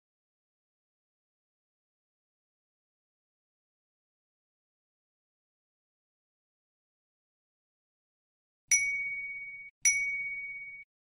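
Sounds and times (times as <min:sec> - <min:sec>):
notification bell ding: 0:08.7 - 0:10.9.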